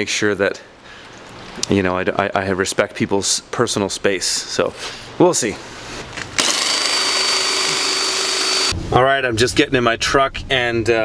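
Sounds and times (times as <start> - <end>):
drill motor whining: 6.4 - 8.8.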